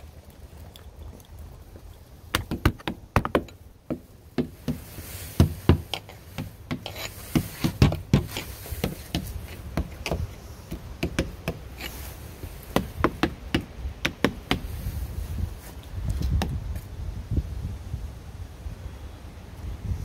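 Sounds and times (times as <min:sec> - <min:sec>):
tapping and knocking on wood: 0:02.3 - 0:12.0, 0:12.6 - 0:14.7.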